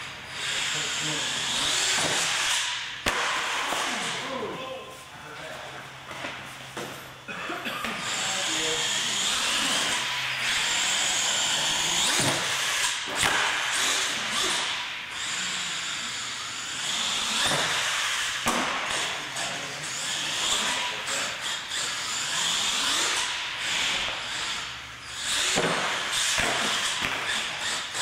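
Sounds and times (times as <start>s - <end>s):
toy truck motor whining: 0.0s - 2.8s, 8.0s - 18.4s, 19.0s - 28.0s.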